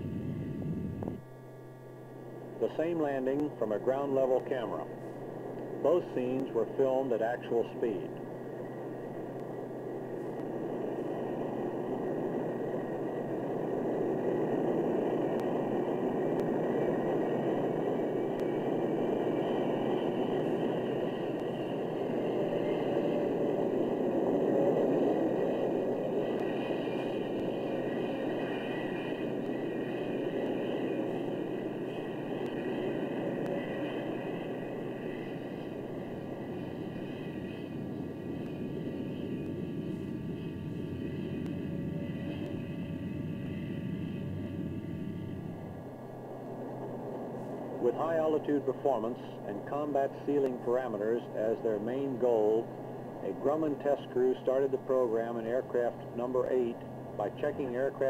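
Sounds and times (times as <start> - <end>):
jet engine roar with whine: 0.0 - 58.0.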